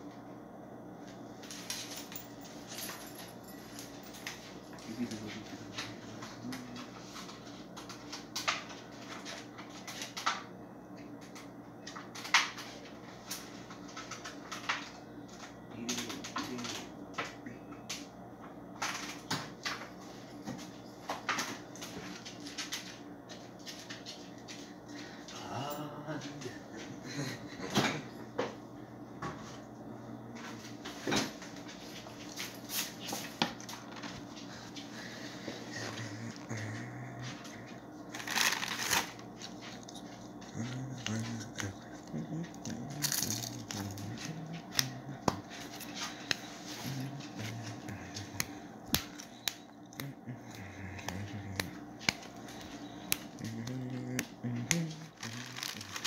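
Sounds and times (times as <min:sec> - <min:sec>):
airplane cabin hum and hiss: 0:25.8 - 0:56.0.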